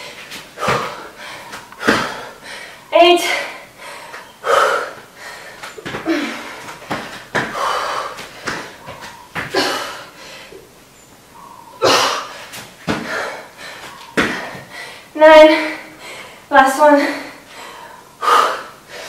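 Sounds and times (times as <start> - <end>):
woman breathing hard: 0.0 - 10.7, 11.4 - 16.5, 17.2 - 19.0
woman grunting: 6.0 - 6.6.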